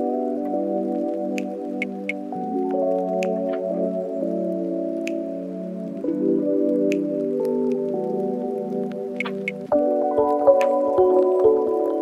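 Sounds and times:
mellow lofi music: 0.0 - 12.0.

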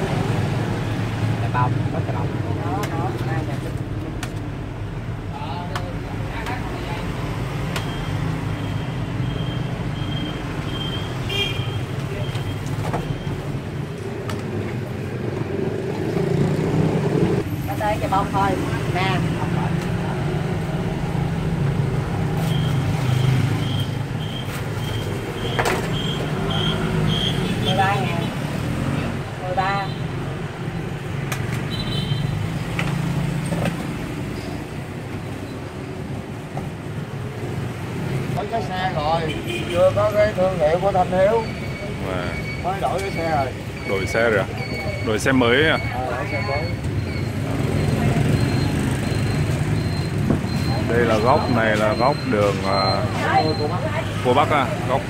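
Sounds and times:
street traffic engines: 0.0 - 55.0
high repeated beeping: 41.4 - 53.9.

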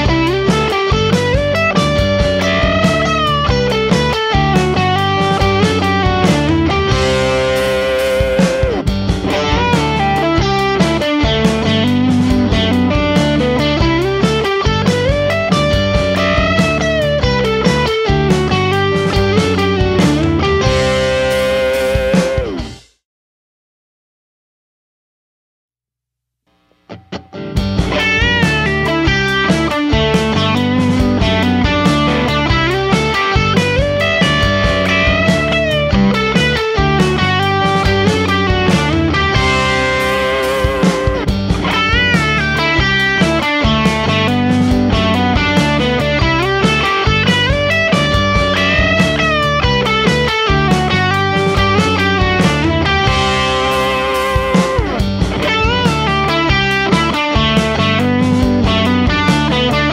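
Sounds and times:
electric guitar lead lines: 0.0 - 22.8, 26.8 - 59.9.

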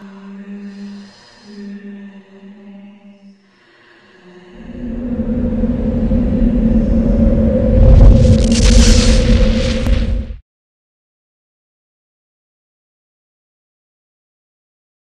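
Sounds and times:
faint sustained droning note: 3.8 - 9.0
loud low rumble with hiss: 4.6 - 10.4.

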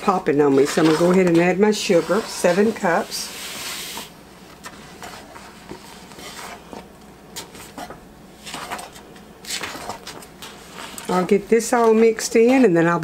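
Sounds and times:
spatula stirring thick jam: 0.0 - 7.8, 10.6 - 13.0.

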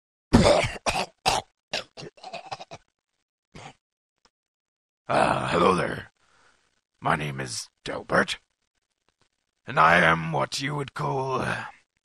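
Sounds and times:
man coughing and hacking: 0.3 - 2.8.

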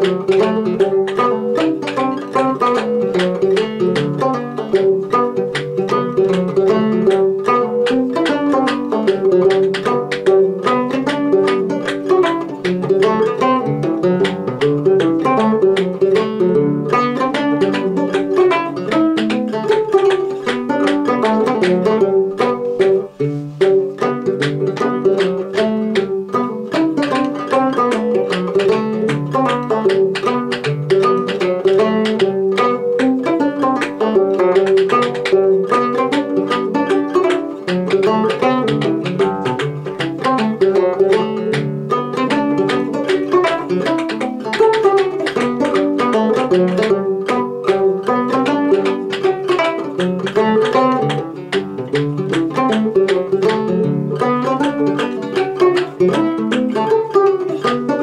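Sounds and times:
banjo playing a hornpipe: 0.0 - 58.0.

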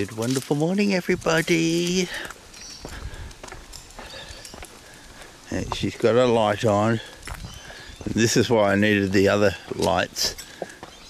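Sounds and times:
low outdoor background: 0.0 - 11.0
footsteps on concrete: 1.3 - 11.0.

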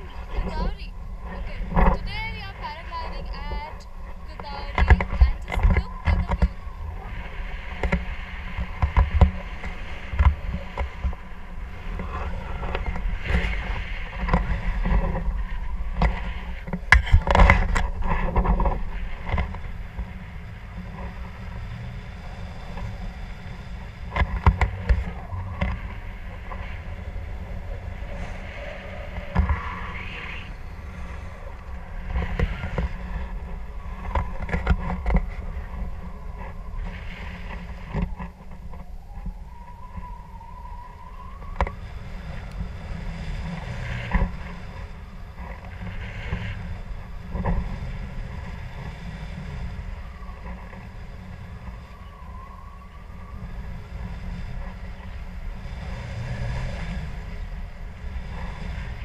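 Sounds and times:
wind rumbling on microphone: 0.0 - 59.0.

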